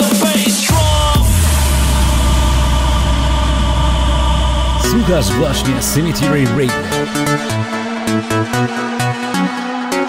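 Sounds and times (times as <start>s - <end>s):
deep bass drone: 0.7s - 8.7s
noise wash: 1.1s - 7.7s.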